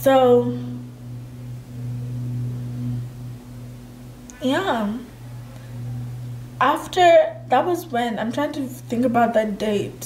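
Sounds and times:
faint high tone: 0.0s - 9.9s
steady low hum: 0.0s - 10.0s.

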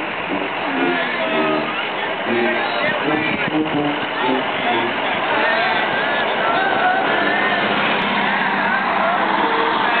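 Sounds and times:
roadside noise: 0.0s - 10.0s
people calling out: 0.1s - 10.0s.

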